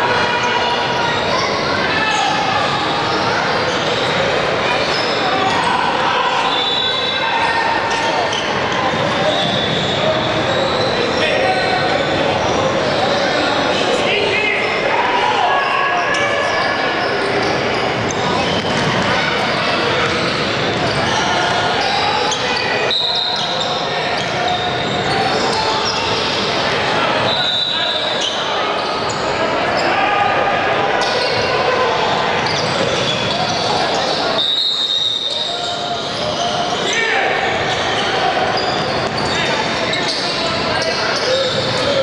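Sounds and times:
echoing overlapping voices: 0.0s - 42.0s.

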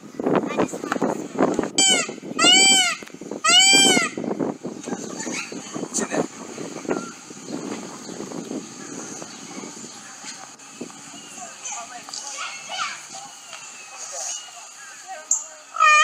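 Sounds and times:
peacock calling: 1.8s - 5.9s, 6.7s - 16.0s.

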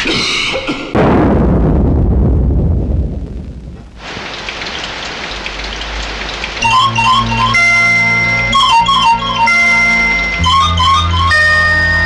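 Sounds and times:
thunderclap rumbling: 1.0s - 8.0s
rain hissing: 1.5s - 12.0s
music with plucked notes: 6.6s - 12.0s.

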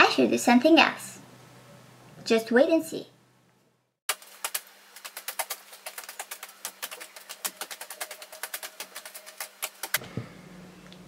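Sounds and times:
rapid sharp clicks and taps: 4.1s - 10.0s
faint steady hum: 10.0s - 11.0s.

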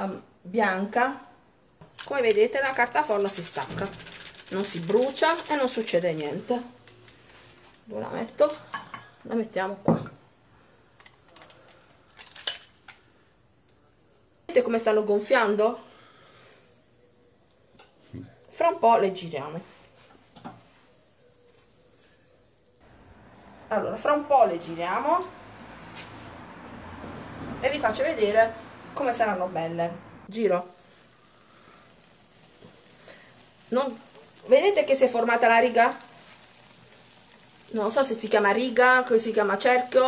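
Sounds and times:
doughnuts sizzling in hot oil: 0.0s - 18.1s, 19.1s - 29.7s, 30.3s - 40.0s.

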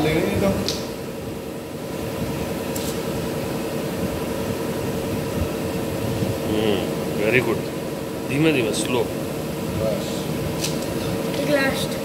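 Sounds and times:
mechanical hum with steady tone: 0.0s - 12.0s.

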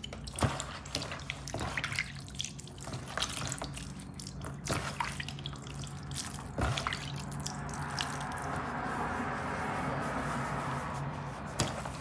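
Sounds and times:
water dripping and splashing: 0.0s - 8.6s
water trickling onto sponge: 0.0s - 9.1s.

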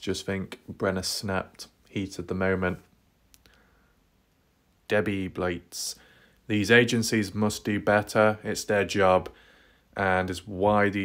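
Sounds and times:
man's voice: 0.0s - 2.9s, 4.9s - 9.4s, 10.0s - 11.0s
faint quick clicks: 3.3s - 3.7s.

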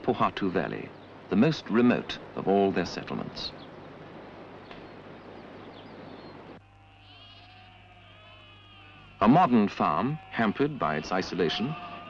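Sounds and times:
outdoor ambience hiss: 0.0s - 12.0s
sheep bleating: 6.6s - 12.0s.

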